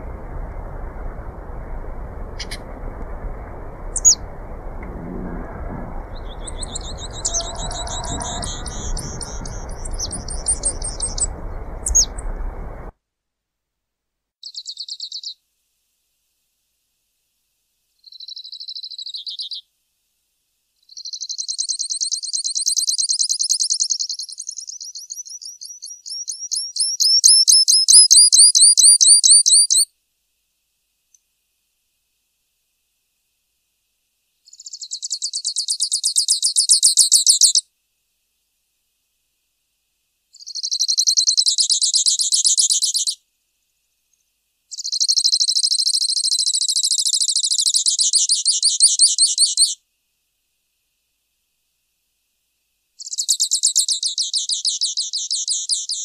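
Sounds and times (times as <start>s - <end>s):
low steady background noise: 0.0s - 56.0s
finch singing buzzy trills: 6.0s - 12.2s.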